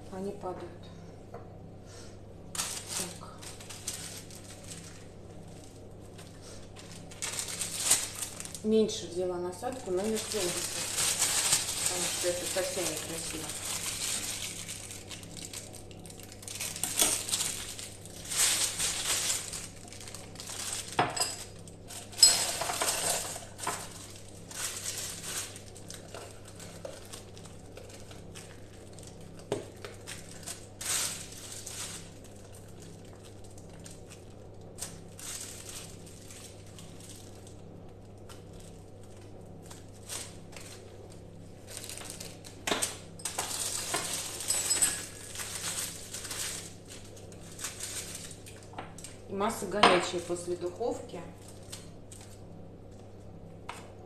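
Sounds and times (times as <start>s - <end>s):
plastic bags crinkling: 2.5s - 50.3s, 51.3s - 53.2s.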